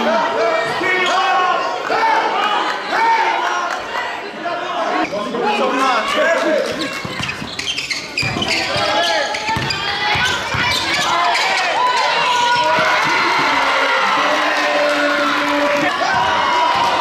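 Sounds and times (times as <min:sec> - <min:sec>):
voices of players and spectators: 0:00.0 - 0:17.0
basketball bouncing on gym floor: 0:08.2 - 0:10.9.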